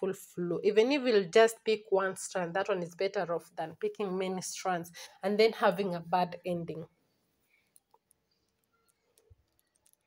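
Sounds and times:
faint clicks from braiding hair: 7.5 - 10.0.

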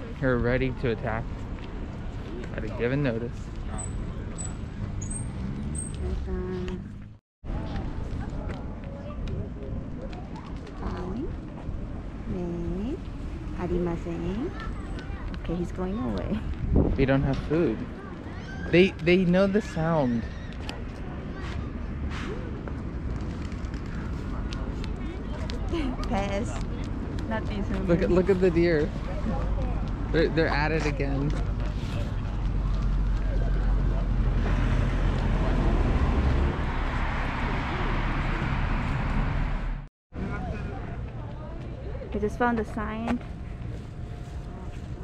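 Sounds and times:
low outdoor rumble: 20.6 - 45.0
faint voices: 40.2 - 45.0.

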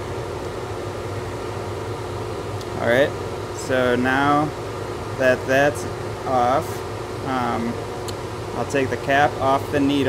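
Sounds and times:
fan blower humming: 0.0 - 10.0.

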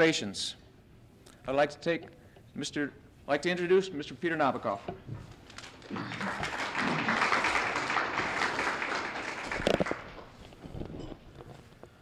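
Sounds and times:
audience applauding: 5.6 - 10.5.

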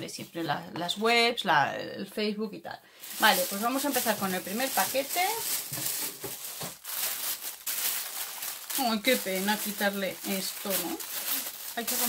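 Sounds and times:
paper and plastic wrapping crinkling: 3.0 - 12.0.

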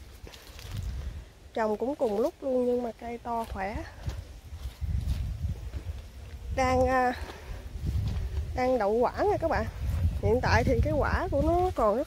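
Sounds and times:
handling rumble on microphone: 3.7 - 12.0.

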